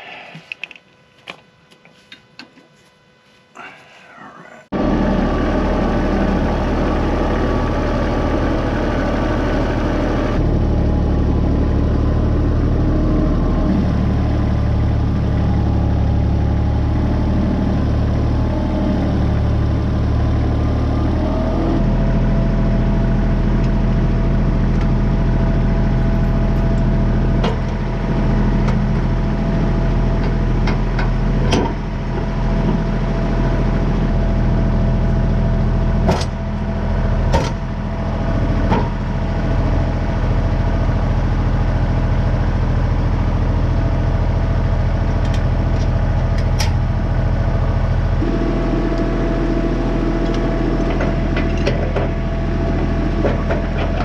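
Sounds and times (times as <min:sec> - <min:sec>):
tractor diesel engine running: 0:04.7 - 0:54.0.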